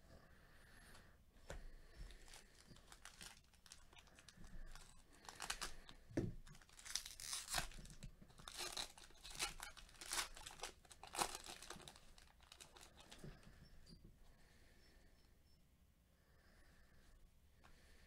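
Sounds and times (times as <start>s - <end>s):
foil wrapper tearing and crinkling: 2.1s - 13.2s.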